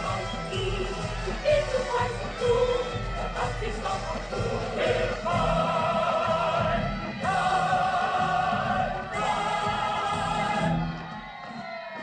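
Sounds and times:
chorus singing held chord: 0:00.0 - 0:11.1
orchestra: 0:00.0 - 0:11.8.

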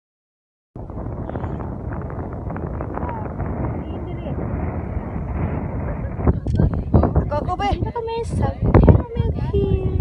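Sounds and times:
wind buffeting microphone: 0:00.8 - 0:10.0.

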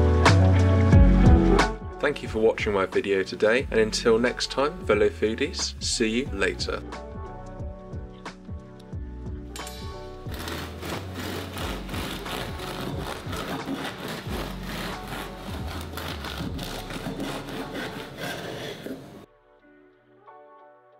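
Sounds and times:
background music: 0:00.0 - 0:20.9
bread knife sawing through crust: 0:10.2 - 0:19.3.

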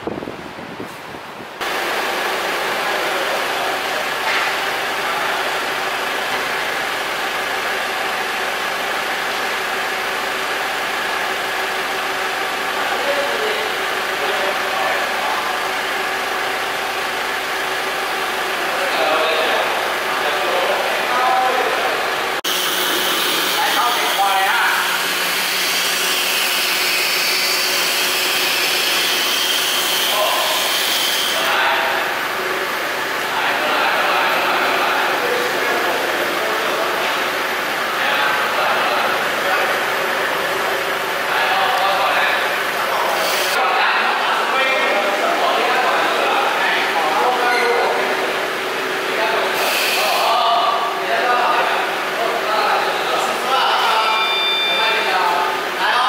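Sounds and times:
forklift engine running: 0:01.6 - 0:49.6
people talking: 0:02.6 - 0:05.7, 0:12.7 - 0:15.9, 0:18.5 - 0:22.4, 0:23.5 - 0:25.0, 0:30.0 - 0:32.2, 0:33.2 - 0:56.0.

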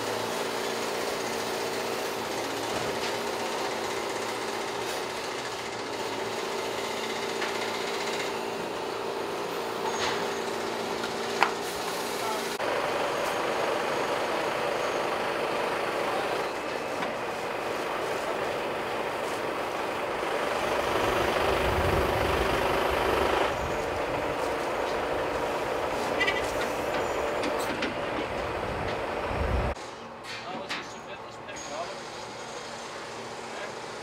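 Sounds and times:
truck engine humming: 0:00.0 - 0:30.2.

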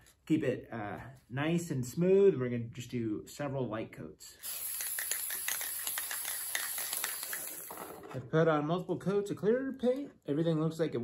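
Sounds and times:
aerosol can spraying hiss: 0:04.4 - 0:07.9.

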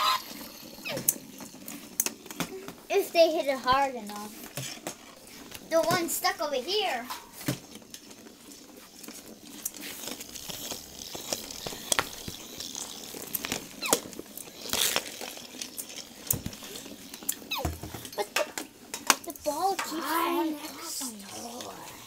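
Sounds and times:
clicks and knocks of balls bumping: 0:00.0 - 0:20.2
toy ball rolling on concrete: 0:00.0 - 0:22.0.

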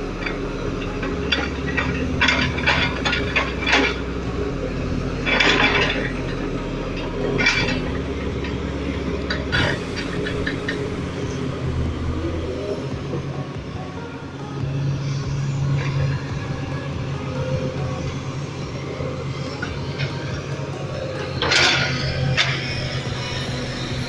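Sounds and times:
excavator diesel engine running: 0:00.0 - 0:24.0.

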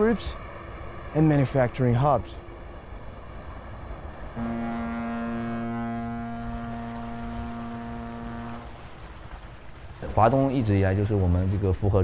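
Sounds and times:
ship's horn blast: 0:04.3 - 0:09.1.

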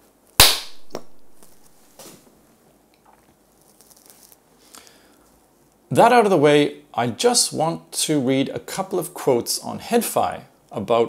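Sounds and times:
sharp smack: 0:00.4 - 0:01.6
clothing rustling on microphone: 0:01.2 - 0:02.4.

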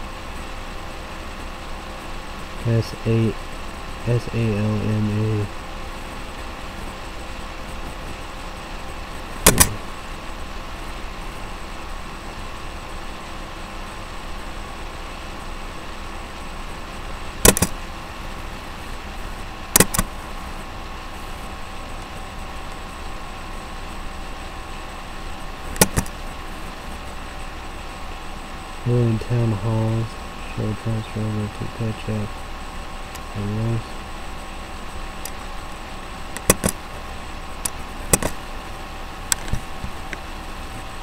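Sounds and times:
faint steady tones: 0:00.0 - 0:41.0
short sharp clicks: 0:09.4 - 0:09.8, 0:17.4 - 0:17.7, 0:19.8 - 0:20.1, 0:25.8 - 0:26.1, 0:36.4 - 0:36.8, 0:37.6 - 0:38.4.

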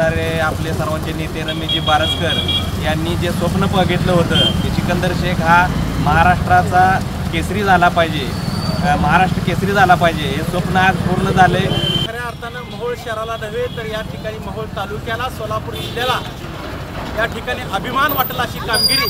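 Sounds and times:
man speaking: 0:00.0 - 0:16.4, 0:17.2 - 0:19.0.

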